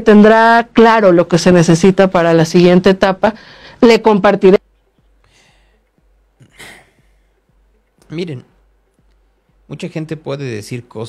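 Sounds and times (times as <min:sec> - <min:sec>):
man sighing: 0:06.4 - 0:07.4.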